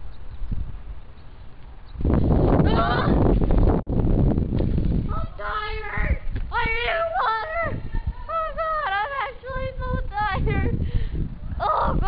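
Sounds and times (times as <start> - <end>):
wind rumbling on microphone: 0.0 - 12.0
young person's wordless vocal sounds: 11.5 - 12.0.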